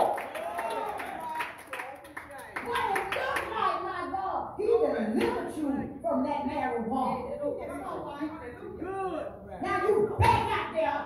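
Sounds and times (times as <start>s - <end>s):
rhythmic hand clapping: 0.0s - 3.6s
woman speaking into a microphone: 2.7s - 8.8s.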